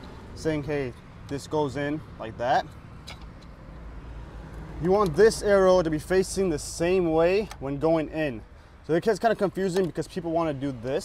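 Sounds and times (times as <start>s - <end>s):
man speaking: 0.4s - 2.7s, 4.8s - 11.0s.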